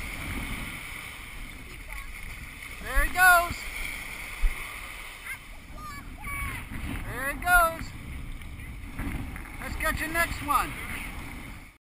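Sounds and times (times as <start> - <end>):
surf washing on beach: 0.0 - 11.8
wind on microphone: 0.0 - 11.8.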